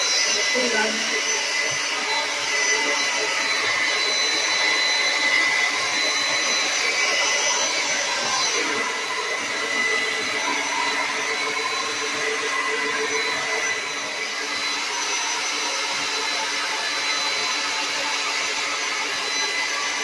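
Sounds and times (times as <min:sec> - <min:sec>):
hair dryer running: 0:00.0 - 0:20.0.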